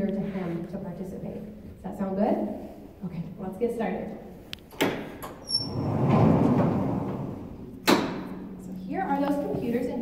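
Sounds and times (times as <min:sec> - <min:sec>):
brief squeak: 0:05.4 - 0:05.9
window panel sliding rumble: 0:05.6 - 0:07.6.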